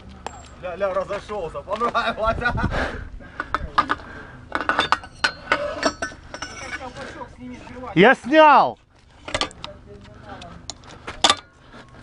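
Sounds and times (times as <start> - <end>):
metal clinking: 3.4 - 7.0.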